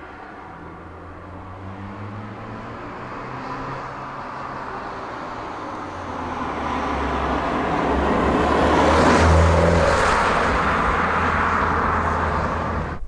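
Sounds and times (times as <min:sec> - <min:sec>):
tyre and road noise: 0:00.0 - 0:13.0.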